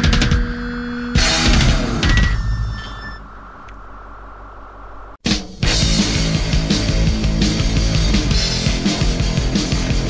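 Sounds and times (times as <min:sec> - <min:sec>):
punk rock music: 0:00.0 - 0:02.7, 0:05.2 - 0:10.0
low amplifier hum: 0:00.0 - 0:10.0.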